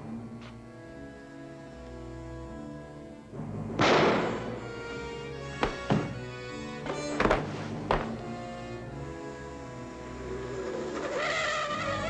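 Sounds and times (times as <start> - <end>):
dramatic orchestral music: 0.9 - 12.0
sharp knocks: 5.6 - 8.2.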